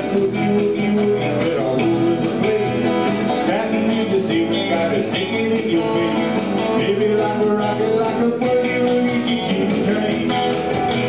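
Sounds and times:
electric guitar notes: 0.0 - 11.0
live band playing: 0.0 - 11.0.

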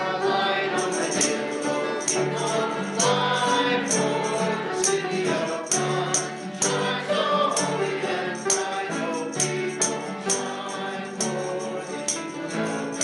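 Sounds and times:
congregation singing a hymn: 0.0 - 13.0
jingling percussion beat: 0.0 - 13.0
piano: 0.0 - 13.0.

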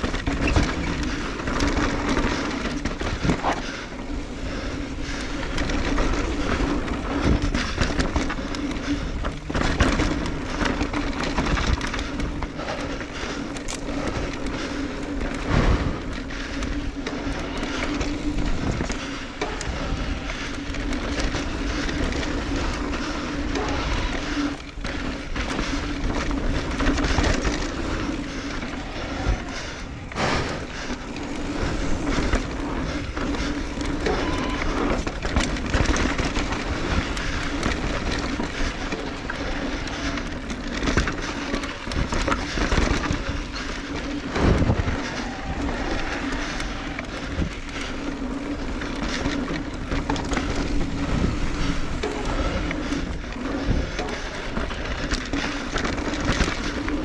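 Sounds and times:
bike knocking and rattling: 0.0 - 57.0
tyres rushing on loose dirt: 0.0 - 57.0.

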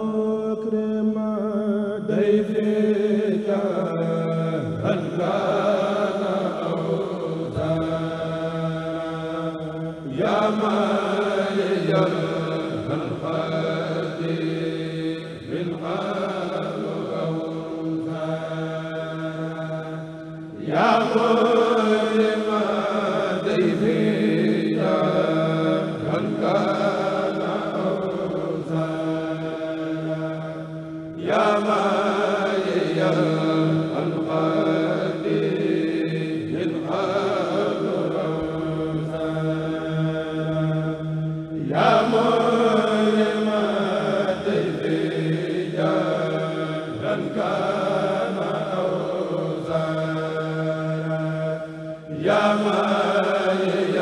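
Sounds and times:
men chanting in unison: 0.0 - 54.0.

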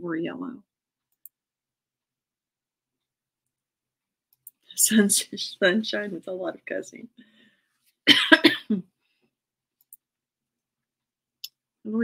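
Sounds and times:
woman coughing: 8.1 - 8.9.

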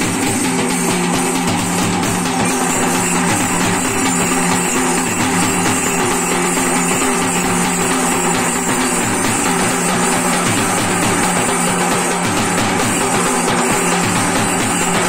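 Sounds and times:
folk drumming with sticks: 0.0 - 15.0.

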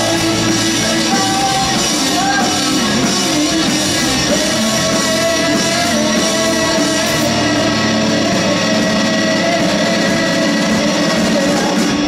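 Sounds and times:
distorted electric guitars: 0.0 - 12.0
rock band playing loudly: 0.0 - 12.0.

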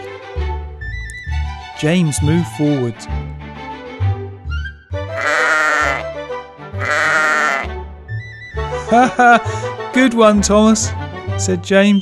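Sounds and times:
background music: 0.0 - 12.0
sheep bleating: 5.1 - 6.1, 6.7 - 7.7.

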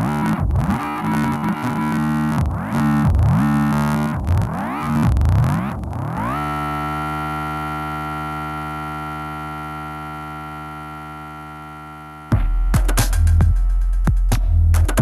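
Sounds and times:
deep electronic beat: 0.0 - 6.4, 12.3 - 15.0
pitched electronic sweep: 0.0 - 13.8.

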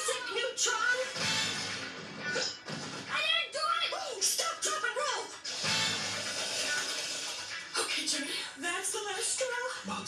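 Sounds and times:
cartoon music from television: 0.0 - 10.0.

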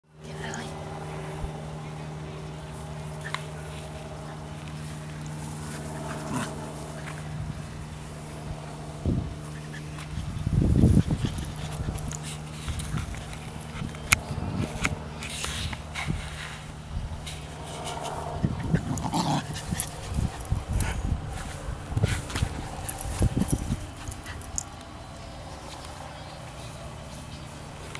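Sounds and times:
low hum: 0.1 - 27.9
dogs tugging rope toy: 3.2 - 7.3, 9.7 - 16.2, 17.2 - 24.9
dog vocal sounds: 18.1 - 21.0.

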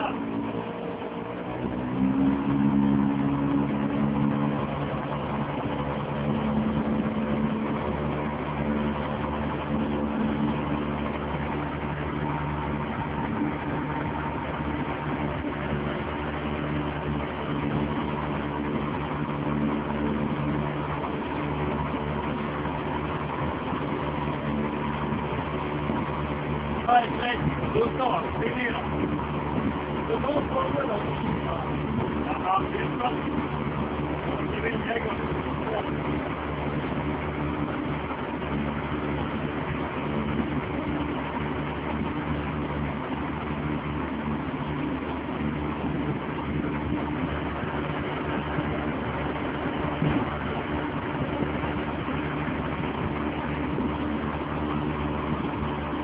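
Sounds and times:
boat motor running: 0.0 - 56.0.

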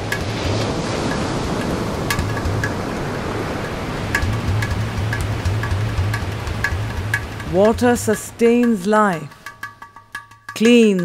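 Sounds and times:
rushing water: 0.0 - 11.0
music with steady beat: 2.1 - 3.0, 4.1 - 11.0.

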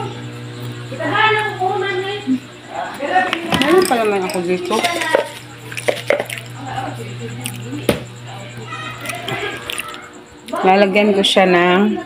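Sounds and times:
kitchen containers and utensils knocking: 3.5 - 6.4.

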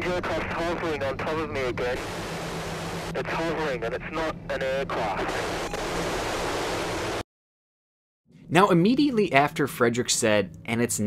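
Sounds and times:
low hum: 0.0 - 7.2
radio static hiss: 0.0 - 7.2.

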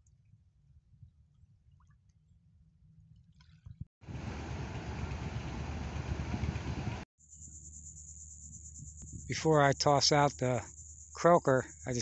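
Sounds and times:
wind on microphone: 3.6 - 7.0
ocean surf breaking: 4.0 - 7.0.

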